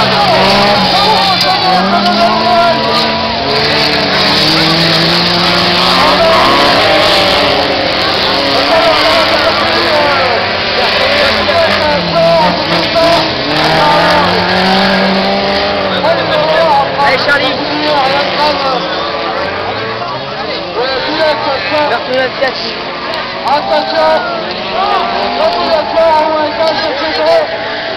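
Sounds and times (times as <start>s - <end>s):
racing car engines revving: 0.0s - 27.9s.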